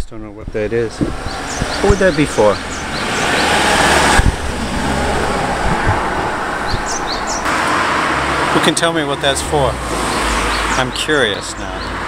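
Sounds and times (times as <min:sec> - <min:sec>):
low engine hum: 0:00.8 - 0:08.7
vehicle passing close by: 0:00.8 - 0:12.0.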